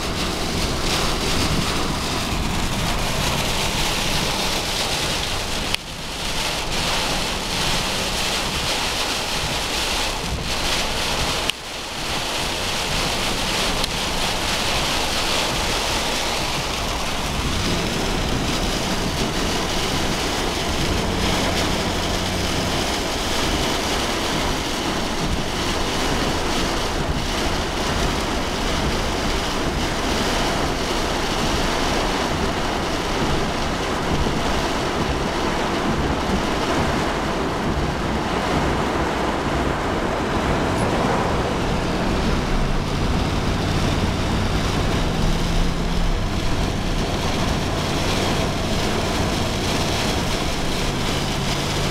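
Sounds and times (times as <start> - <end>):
car engine and road hum: 0.0 - 51.9
heavy rain and wind on car: 0.0 - 51.9.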